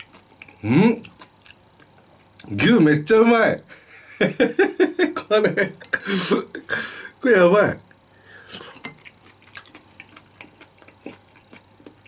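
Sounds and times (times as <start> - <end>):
soft chewing: 0.0 - 2.5, 7.8 - 12.0.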